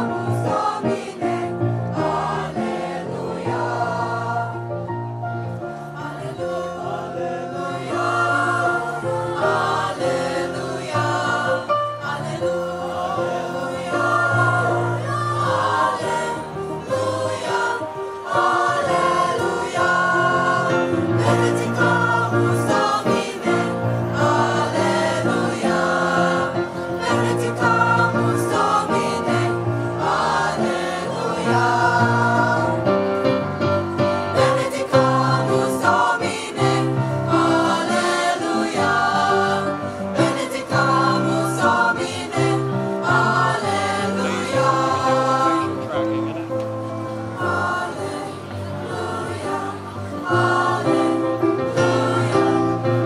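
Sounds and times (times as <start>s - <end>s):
mixed-voice choir singing: 0.0s - 46.2s, 46.8s - 53.0s.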